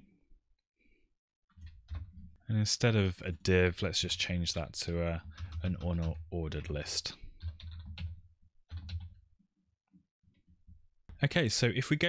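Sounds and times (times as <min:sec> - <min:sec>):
keyboard keystrokes: 0:08.7 - 0:09.2.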